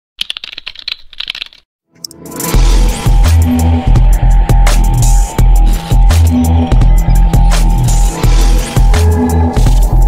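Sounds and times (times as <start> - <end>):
keyboard typing: 0.2 - 2.2.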